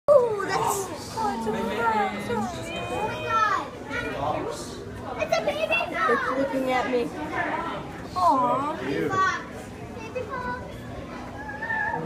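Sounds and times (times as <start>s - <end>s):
children exclaiming and chattering: 0.1s - 12.0s.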